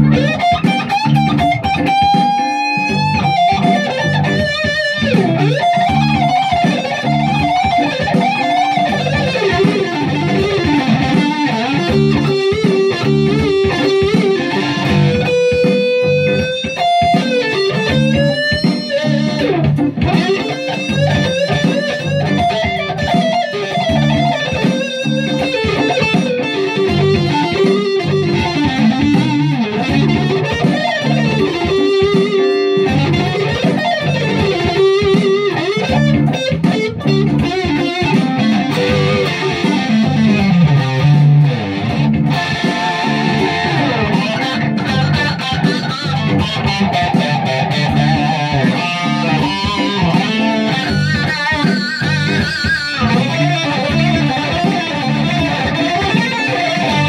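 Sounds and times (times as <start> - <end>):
electric guitar riffs: 0.0 - 57.0.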